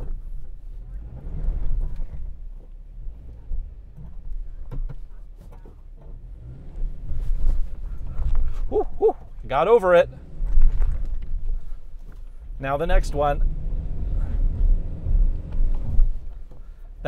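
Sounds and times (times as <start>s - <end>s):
car engine under load: 0.0s - 17.0s.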